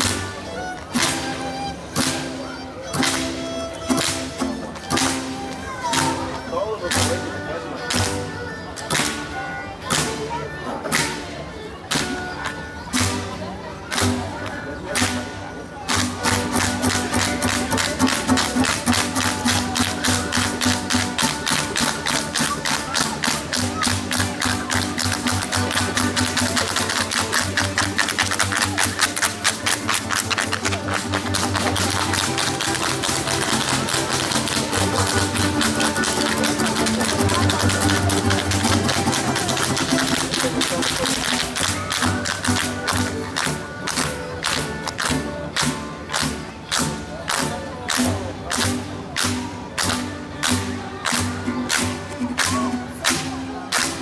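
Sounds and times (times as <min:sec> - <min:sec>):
string band playing: 0:00.0 - 0:54.0
sandals stamping on stone: 0:15.9 - 0:54.0.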